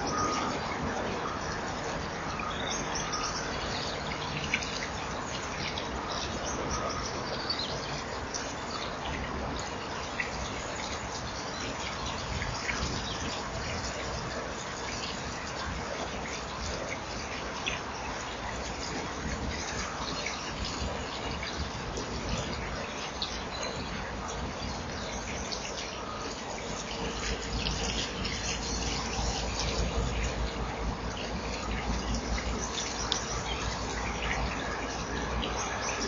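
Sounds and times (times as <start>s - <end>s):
outdoor background hiss: 0.0s - 36.0s.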